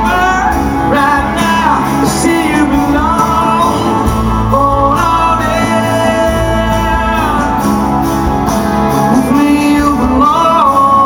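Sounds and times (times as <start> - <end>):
drum kit: 0.0 - 11.0
guitars: 0.0 - 11.0
man singing: 0.0 - 11.0.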